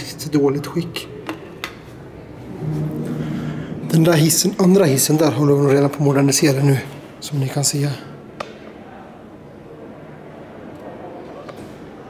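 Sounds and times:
subway station hum: 0:00.0 - 0:12.0.

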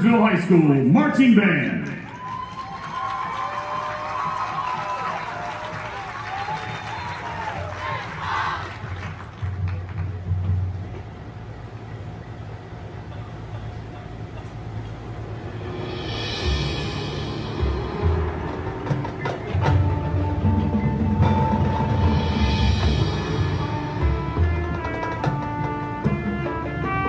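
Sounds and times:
marching band: 0:00.0 - 0:27.0
low percussion rumble: 0:01.8 - 0:27.0
cymbal swell: 0:15.1 - 0:25.0
sharp percussion hits: 0:15.1 - 0:27.0.

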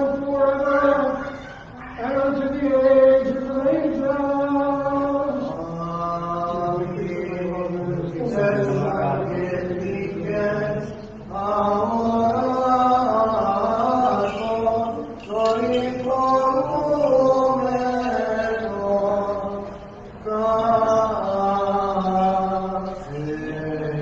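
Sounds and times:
person chanting long notes: 0:00.0 - 0:24.0.

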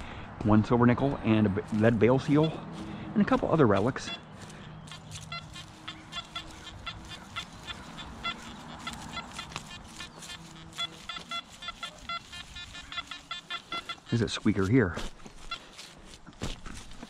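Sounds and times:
metal detector chirping beeps: 0:03.8 - 0:14.8, 0:15.4 - 0:15.6.

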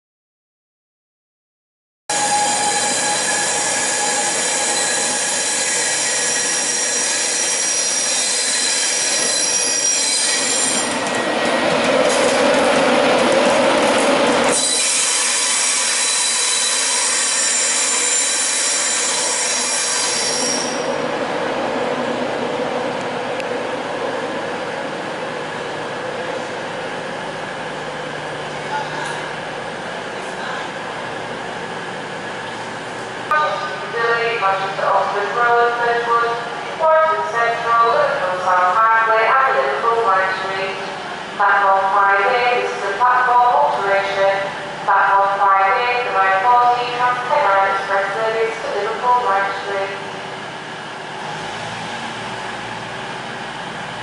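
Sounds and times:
electric train whining: 0:02.1 - 0:28.6
train wheels rumbling: 0:02.1 - 0:33.9.

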